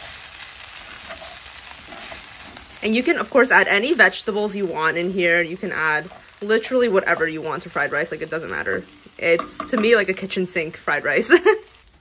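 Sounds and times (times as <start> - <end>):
spatula scraping pan: 0.0 - 10.4
fried rice sizzling: 0.0 - 12.0.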